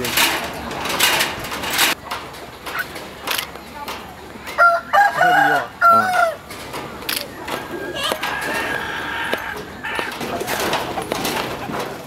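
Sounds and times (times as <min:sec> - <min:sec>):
rooster crowing: 0:04.6 - 0:06.4, 0:07.6 - 0:10.1.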